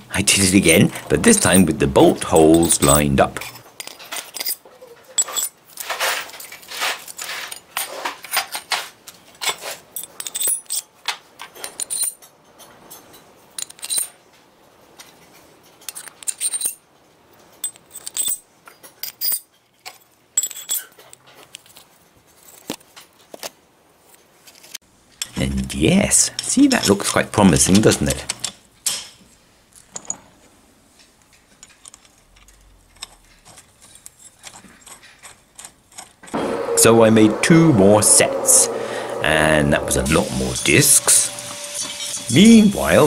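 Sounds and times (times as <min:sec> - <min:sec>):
steel discs clinking: 0:00.5 - 0:08.8, 0:09.4 - 0:10.9, 0:11.5 - 0:14.2, 0:31.3 - 0:43.0.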